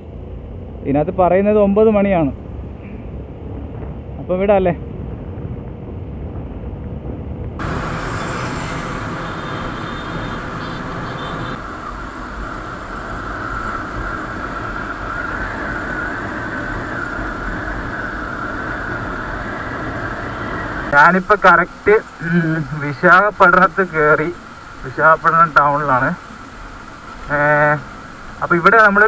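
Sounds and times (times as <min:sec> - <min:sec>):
traffic hum: 0:00.0 - 0:29.0
wind and road noise: 0:00.0 - 0:29.0.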